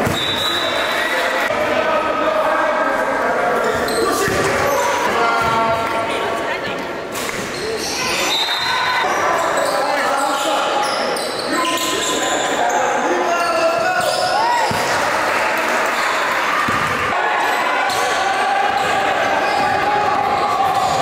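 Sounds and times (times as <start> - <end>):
indistinct voices in gym: 0.0 - 21.0.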